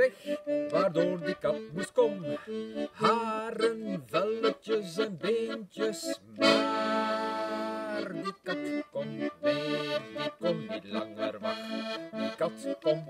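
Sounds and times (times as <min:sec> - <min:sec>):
button accordion chords: 0:00.0 - 0:13.0
person singing: 0:00.0 - 0:13.0.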